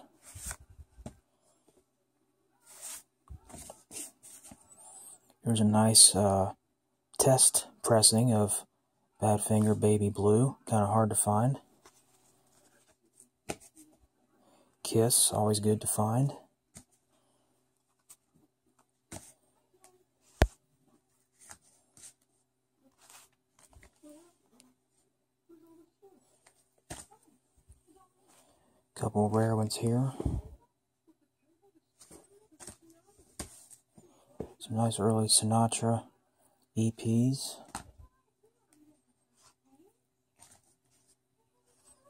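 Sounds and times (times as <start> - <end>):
paper sleeves rustling: 0.0 - 1.2, 2.6 - 4.8, 21.3 - 22.3, 22.9 - 24.2, 40.4 - 41.9.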